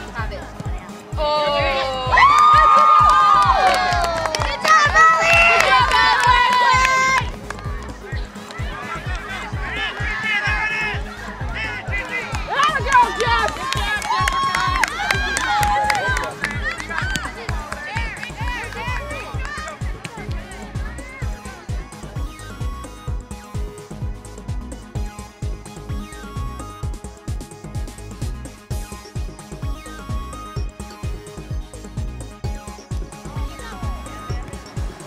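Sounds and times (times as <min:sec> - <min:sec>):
music with steady beat: 0:00.0 - 0:35.0
people cheering and screaming: 0:01.2 - 0:07.3, 0:08.2 - 0:22.1.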